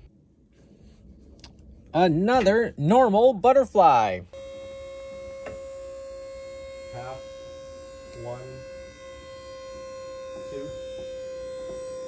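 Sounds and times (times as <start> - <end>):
steady motor hum: 4.3 - 12.0.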